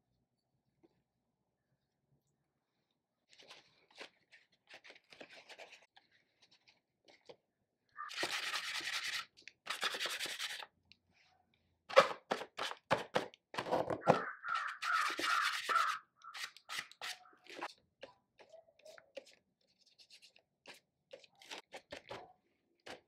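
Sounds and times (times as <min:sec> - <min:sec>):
marker scrubbing on paper: 0:08.0 - 0:10.7, 0:14.5 - 0:17.7, 0:18.8 - 0:22.0.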